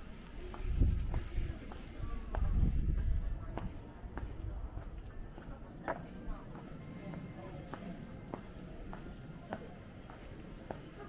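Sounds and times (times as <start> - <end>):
bicycle passing close by: 0.1 - 3.0.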